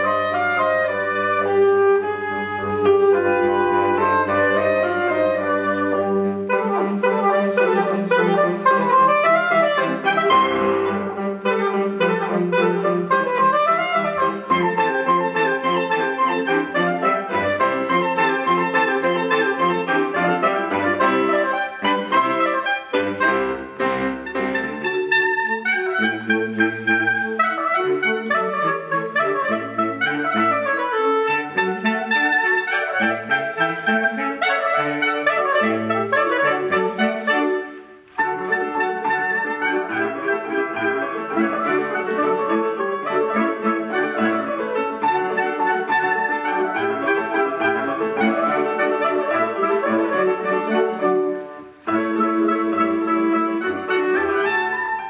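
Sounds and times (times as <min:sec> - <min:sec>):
grand piano: 0:00.0 - 0:55.0
saxophone ensemble: 0:00.0 - 0:55.0.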